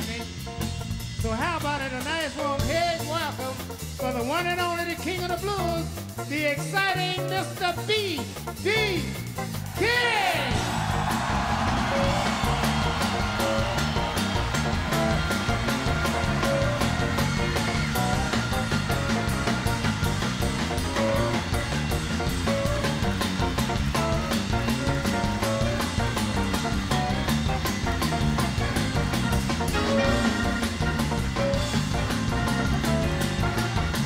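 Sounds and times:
blues band playing instrumental: 0:00.0 - 0:34.0
crowd cheering and clapping: 0:09.4 - 0:34.0.

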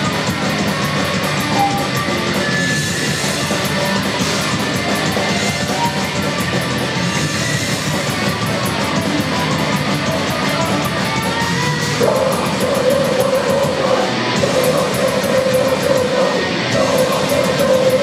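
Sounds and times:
fast cymbal hits: 0:00.0 - 0:18.0
heavy metal band playing: 0:00.0 - 0:18.0
held note: 0:01.5 - 0:02.8.

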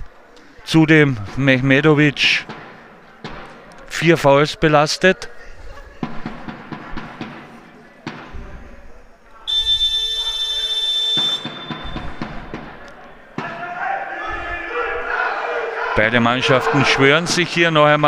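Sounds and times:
sports hall buzzer: 0:09.5 - 0:12.2
team shouting together: 0:13.4 - 0:17.3.

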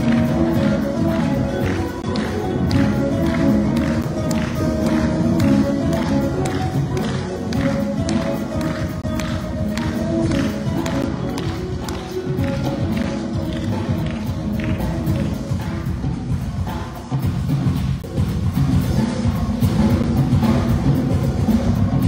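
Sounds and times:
band playing: 0:00.0 - 0:22.0.

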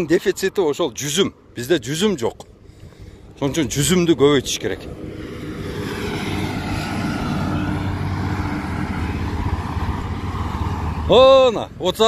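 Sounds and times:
car engine hum: 0:00.0 - 0:12.0.

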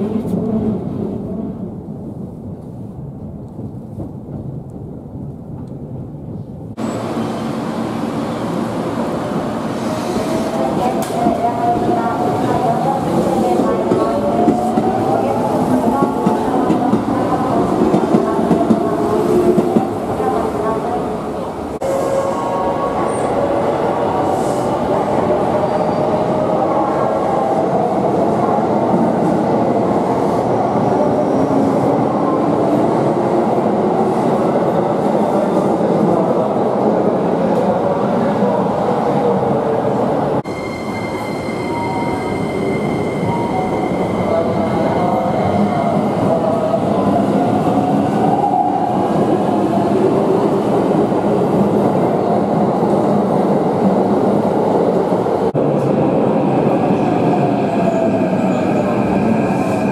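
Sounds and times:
steady high tone: 0:40.4 - 0:45.4.

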